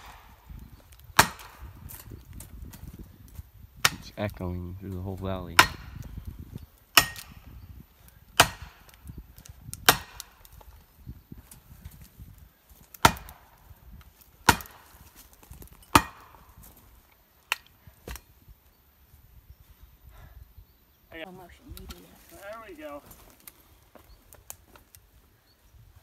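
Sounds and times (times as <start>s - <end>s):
axe chopping tree trunk: 1.2s - 1.8s, 5.6s - 6.1s, 6.9s - 7.4s, 8.3s - 9.0s, 9.8s - 10.4s, 12.9s - 13.5s, 14.2s - 16.4s, 17.5s - 18.2s.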